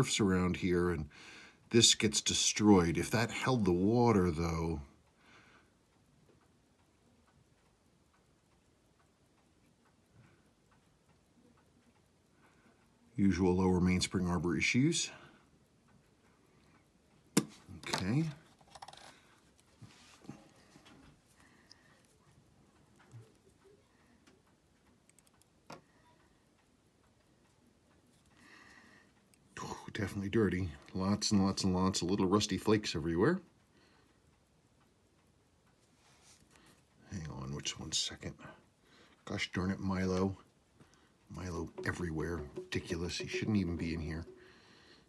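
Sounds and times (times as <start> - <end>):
watch ticking: 2.8 - 14.8, 15.4 - 45.0.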